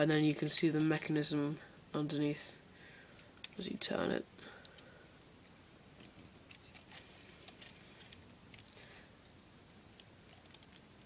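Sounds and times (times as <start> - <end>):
plastic parts clicking: 4.6 - 9.4, 10.0 - 11.0.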